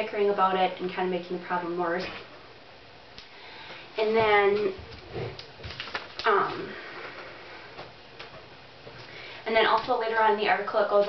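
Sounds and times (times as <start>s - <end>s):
low room noise: 0.0s - 11.0s
paper crinkling: 4.9s - 6.3s.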